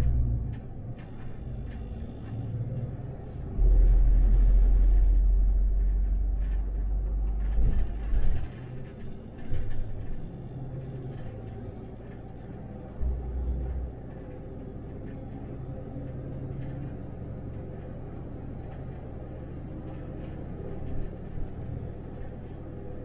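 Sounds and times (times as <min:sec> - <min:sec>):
bus drivetrain and tyres rumble: 0:00.0 - 0:23.0
heavy low drone: 0:00.0 - 0:23.0.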